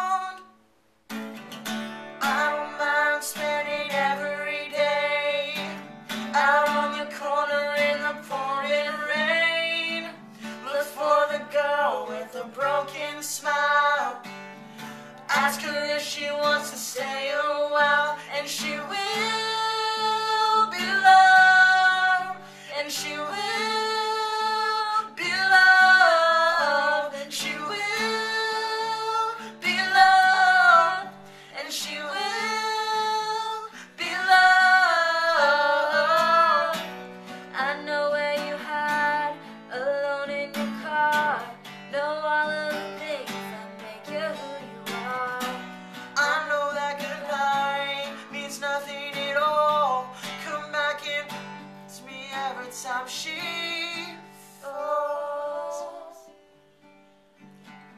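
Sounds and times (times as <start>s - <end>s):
woman and man singing duet: 0.0s - 0.5s, 2.2s - 56.4s
acoustic guitar strumming: 1.1s - 57.9s.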